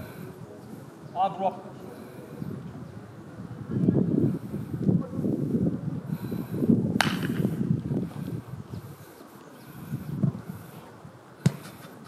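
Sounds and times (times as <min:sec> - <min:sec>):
gusty wind on microphone: 0:02.3 - 0:12.0
football being kicked: 0:11.4 - 0:11.8.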